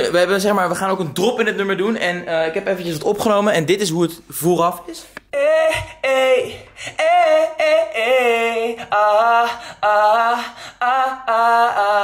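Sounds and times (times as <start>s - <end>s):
man singing unaccompanied: 4.8s - 12.0s.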